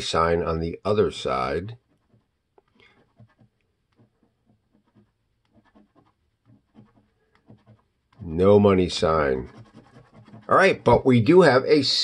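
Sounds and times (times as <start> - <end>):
coin scraping a scratch card: 1.7 - 7.9.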